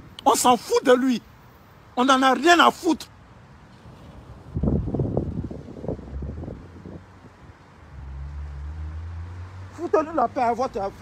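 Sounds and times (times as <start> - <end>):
wind buffeting microphone: 3.7 - 9.3.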